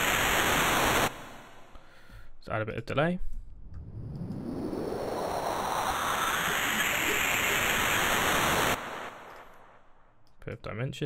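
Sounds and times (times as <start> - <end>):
synthesized noise riser: 0.0 - 1.7, 3.6 - 10.1.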